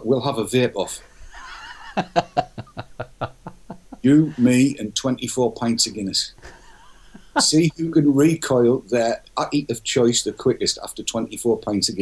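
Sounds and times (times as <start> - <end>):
man laughing: 1.2 - 4.8, 6.4 - 7.7.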